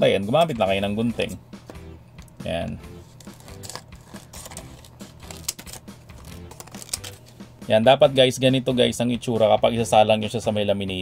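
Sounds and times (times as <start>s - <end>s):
scissors cutting plastic: 3.0s - 7.4s.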